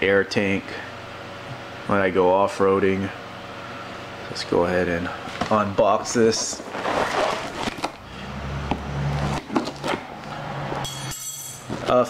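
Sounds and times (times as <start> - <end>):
cardboard box rustling and scraping: 6.1 - 8.0, 9.1 - 10.0.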